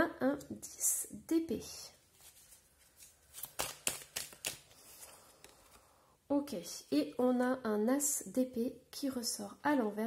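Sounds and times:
cards flicking and snapping: 0:03.0 - 0:05.8.

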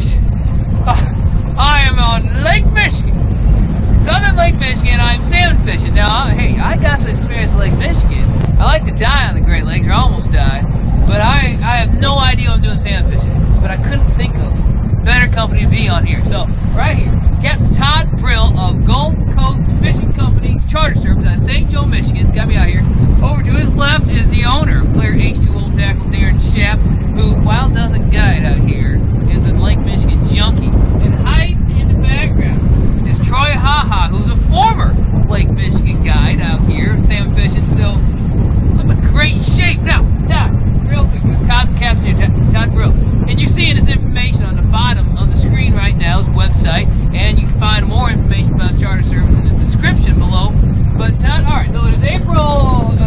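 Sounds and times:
man talking: 0:00.0 - 0:03.2, 0:03.9 - 0:38.0, 0:38.7 - 0:53.0
wind buffeting microphone: 0:00.0 - 0:53.0.

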